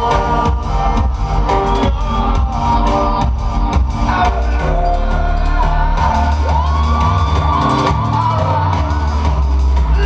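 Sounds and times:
electronic dub music: 0.0 - 10.0
crowd whooping and shouting: 1.6 - 10.0.

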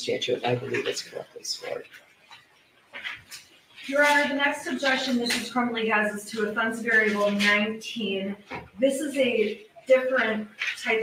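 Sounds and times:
woman speaking: 3.8 - 11.0.

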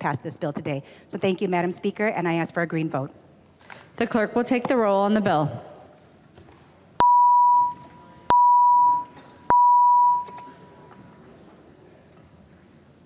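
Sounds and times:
electronic beeps: 7.0 - 10.6.

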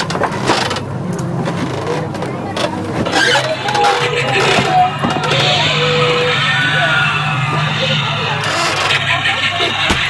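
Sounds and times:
low mechanical drone: 0.0 - 10.0
indistinct voices: 0.7 - 10.0.

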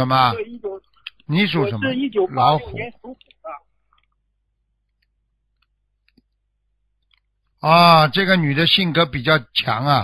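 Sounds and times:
person speaking: 0.0 - 3.8
faint clicks: 4.8 - 6.4.

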